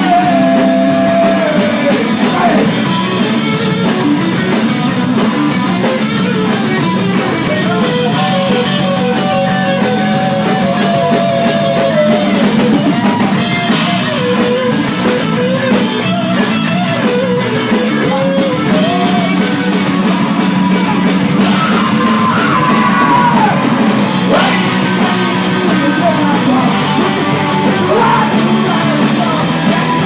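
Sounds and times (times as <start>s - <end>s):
man singing into microphone: 0.0s - 2.8s, 7.4s - 12.5s, 24.3s - 30.0s
bass guitar: 0.0s - 30.0s
drum kit: 0.0s - 30.0s
electric guitar: 0.0s - 30.0s.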